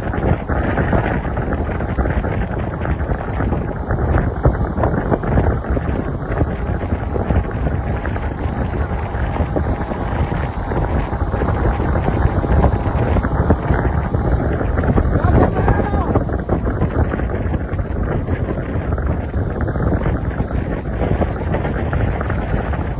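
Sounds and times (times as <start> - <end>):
engine and road noise rumble: 0.0 - 22.9
wind buffeting microphone: 0.0 - 22.9.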